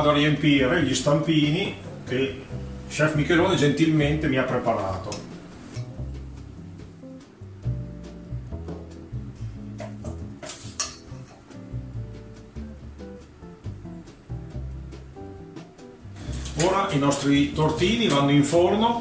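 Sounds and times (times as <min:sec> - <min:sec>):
bossa nova music: 0:00.0 - 0:19.0
spoon clinking on metal: 0:10.4 - 0:11.4.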